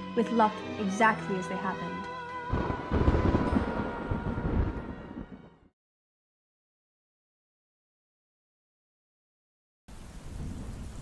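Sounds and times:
rain: 2.5s - 5.5s, 9.9s - 11.0s
low rumble of thunder: 2.5s - 5.7s, 10.0s - 11.0s.

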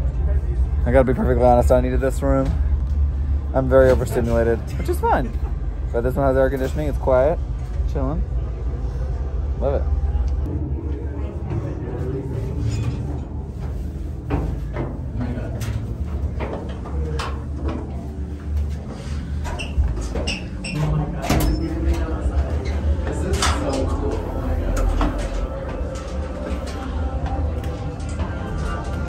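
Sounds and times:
indistinct voices: 0.0s - 29.0s
low rumble: 0.0s - 29.0s
knocks and clatter: 12.5s - 22.1s.

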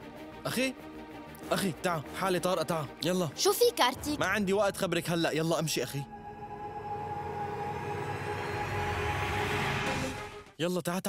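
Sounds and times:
dramatic sustained score: 3.9s - 10.5s.

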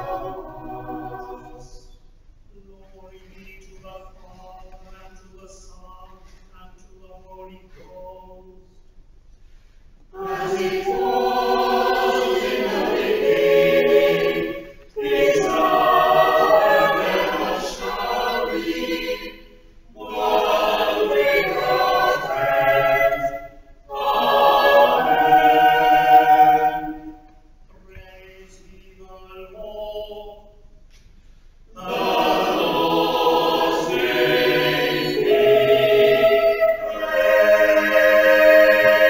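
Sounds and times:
choir singing in harmony: 0.0s - 2.0s, 10.1s - 30.6s, 31.7s - 39.0s.

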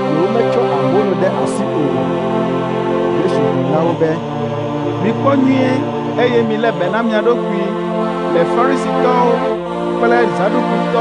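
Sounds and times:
background music: 0.0s - 11.0s
person speaking: 5.0s - 7.6s.

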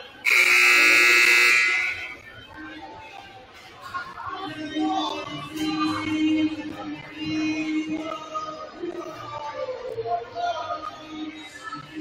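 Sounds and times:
scoreboard buzzer blast: 0.3s - 2.2s.

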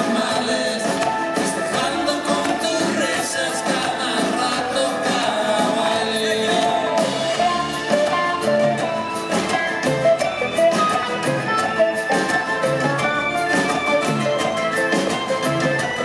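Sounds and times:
acoustic guitar: 0.0s - 16.0s
drum kit beat: 0.0s - 16.0s
electric guitar: 0.0s - 16.0s
upright bass: 0.0s - 16.0s.

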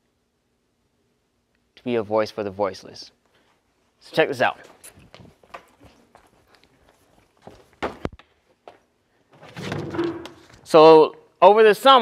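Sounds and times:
footsteps on wooden steps: 5.1s - 8.8s.

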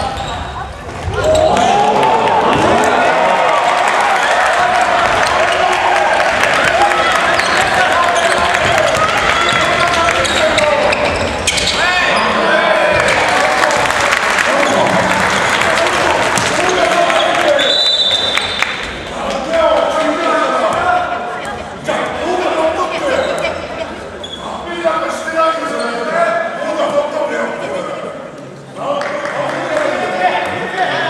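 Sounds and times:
people shouting: 1.2s - 10.4s
shoe squeaks: 9.4s - 12.4s, 23.0s - 24.6s
referee's whistle: 17.6s - 18.6s.

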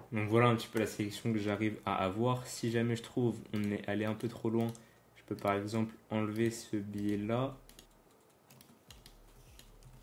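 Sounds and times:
computer keyboard clicks: 3.5s - 5.7s, 6.3s - 10.0s.

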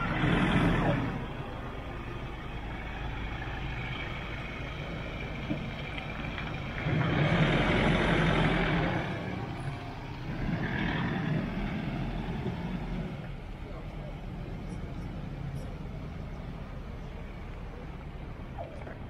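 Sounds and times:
pickup truck engine: 0.0s - 19.0s
tyres rolling on asphalt: 0.0s - 19.0s.

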